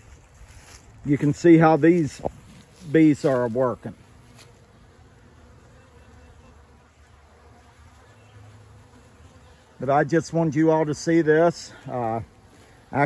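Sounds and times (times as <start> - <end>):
honeybees humming: 0.9 - 13.0.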